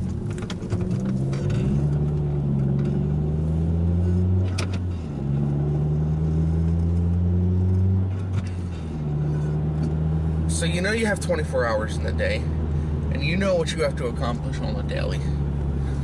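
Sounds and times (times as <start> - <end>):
car engine: 0.0 - 16.0
road hum: 0.0 - 16.0.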